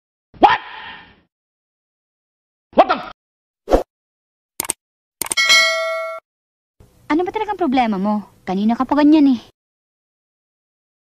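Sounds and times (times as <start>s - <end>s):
mouse clicks: 4.6s - 5.4s
bright bell ding: 5.4s - 6.2s.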